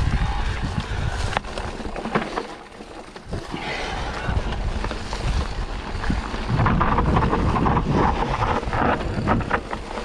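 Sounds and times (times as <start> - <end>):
wind buffeting microphone: 0.0 - 2.0, 3.2 - 10.0
bike tyres rolling over dry leaves: 0.0 - 10.0
small knocks from bike: 0.7 - 3.5, 4.4 - 10.0.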